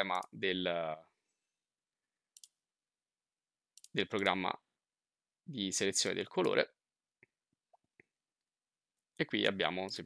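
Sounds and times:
computer mouse clicks: 2.4 - 2.6, 3.8 - 4.4.

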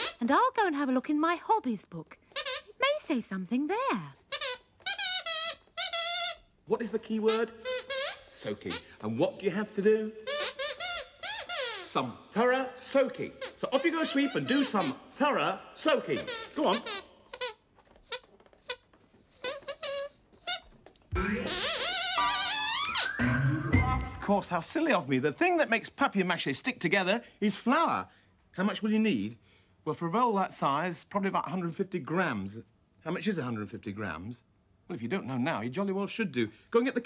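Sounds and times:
dog puppet squeaker squeaking: 0.0 - 0.2, 2.3 - 2.8, 4.3 - 6.6, 7.2 - 8.9, 10.2 - 12.2, 13.3 - 15.2, 16.0 - 24.2
high wavering squeaks: 16.2 - 24.2.

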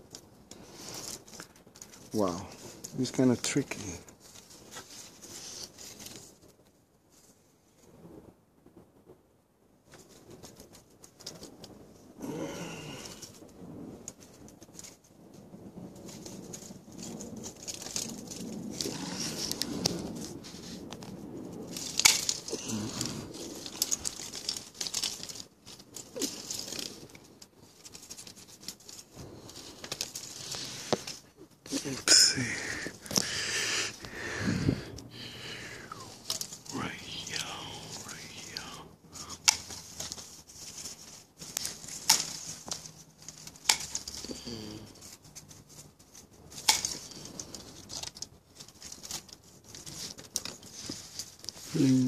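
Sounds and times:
leaves and twigs rustling: 0.0 - 8.9, 9.7 - 52.0
twigs snapping: 16.0 - 52.0.

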